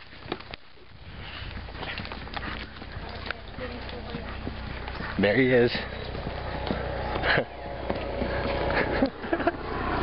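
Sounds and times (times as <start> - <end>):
horse hooves clopping on dirt: 0.0 - 10.0
steady rustling: 0.0 - 10.0.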